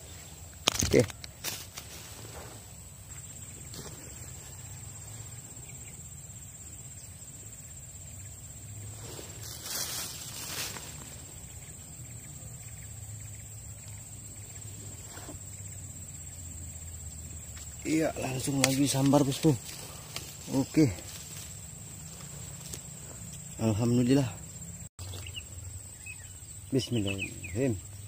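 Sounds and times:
faint outdoor ambience: 0:00.0 - 0:28.0
high-pitched insect drone: 0:00.0 - 0:28.0.

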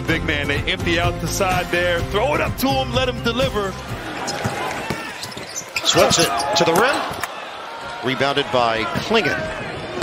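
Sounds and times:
arena crowd noise: 0:01.3 - 0:10.0.

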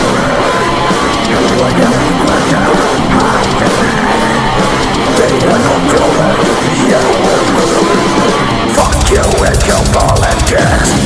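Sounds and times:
distorted electric guitar riffing: 0:00.0 - 0:11.0
drums: 0:00.0 - 0:11.0
harsh vocal shouting: 0:00.0 - 0:11.0.

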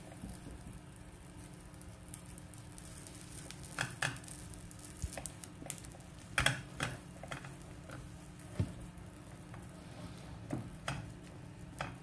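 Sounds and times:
fingers patting dough in pan: 0:00.0 - 0:09.8, 0:10.4 - 0:12.0.

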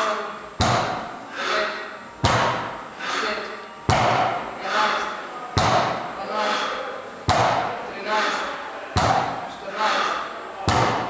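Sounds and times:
barbell thudding on rubber floor: 0:02.2 - 0:02.7, 0:03.9 - 0:04.4, 0:07.3 - 0:07.7, 0:10.7 - 0:11.0.

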